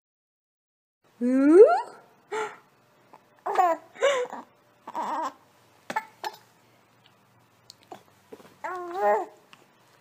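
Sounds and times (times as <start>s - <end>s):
baby cooing: 3.4s - 6.5s, 8.6s - 9.5s.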